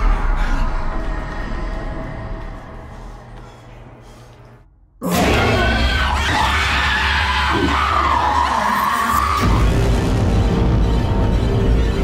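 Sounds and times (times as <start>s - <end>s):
low droning horror music: 0.0s - 12.0s.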